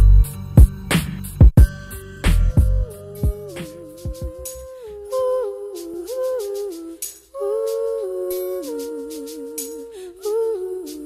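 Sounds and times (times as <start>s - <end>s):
hi-hat ticks: 6.1s - 11.0s.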